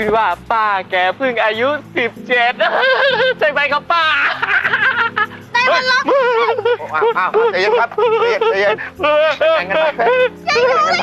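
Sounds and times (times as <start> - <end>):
soft background music: 0.0 - 11.0
man laughing heartily: 2.4 - 3.5, 4.1 - 5.4, 6.1 - 11.0.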